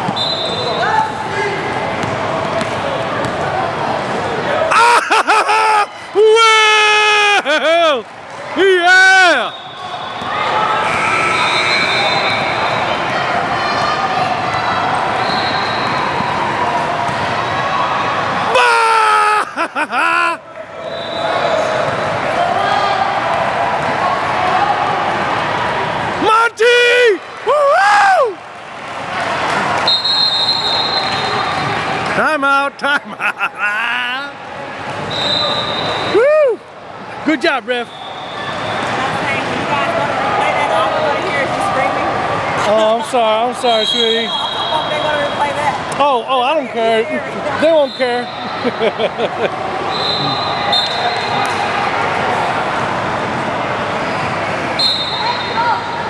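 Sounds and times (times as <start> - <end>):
crowd and player noise: 0.0 - 56.0.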